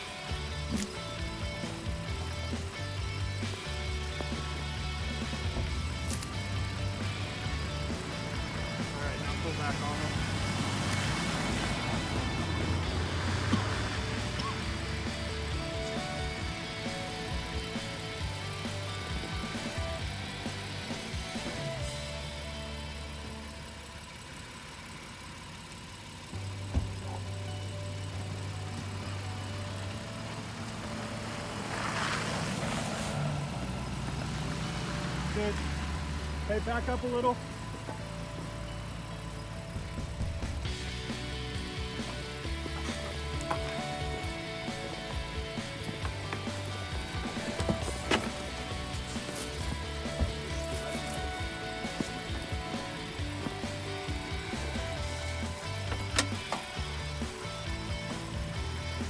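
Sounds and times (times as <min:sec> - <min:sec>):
background music: 0:00.0 - 0:24.3, 0:26.3 - 0:59.0
car engine idling: 0:00.0 - 0:59.0.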